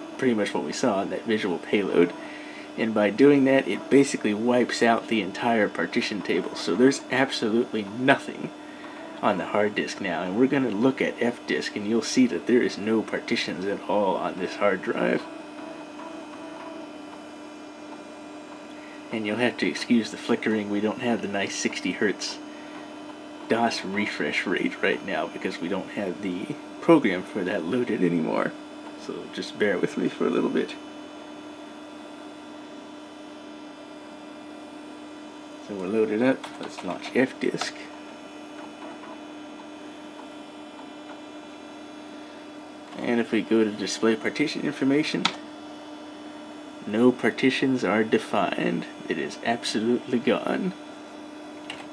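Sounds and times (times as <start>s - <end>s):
desktop computer humming: 0.0s - 51.9s.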